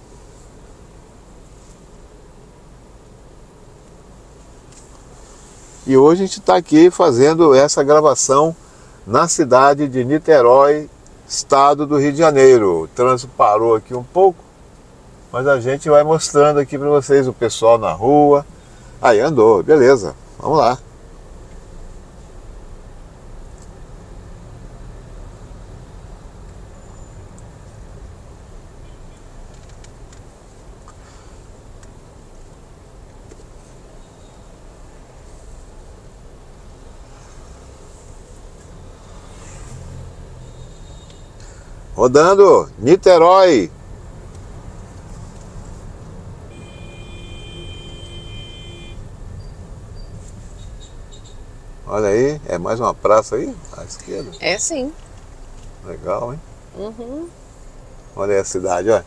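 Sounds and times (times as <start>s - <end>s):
car engine and tyres rumbling: 0.0s - 59.0s.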